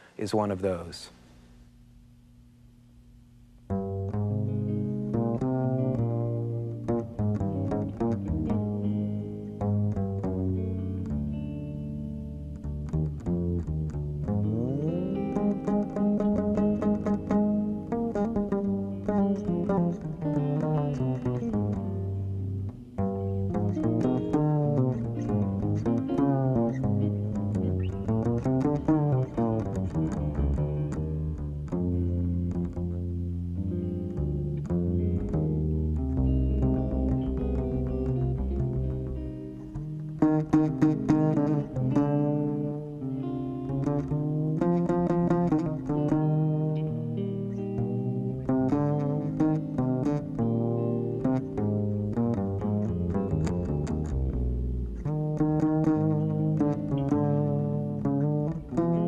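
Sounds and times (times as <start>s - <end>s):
electric guitar: 3.0s - 59.0s
double bass played pizzicato: 3.7s - 43.0s, 43.6s - 59.0s.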